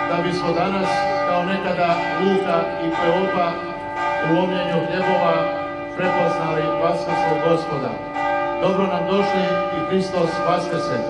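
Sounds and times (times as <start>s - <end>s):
man's voice: 0.0s - 8.0s, 8.6s - 11.0s
church bells ringing: 0.0s - 11.0s.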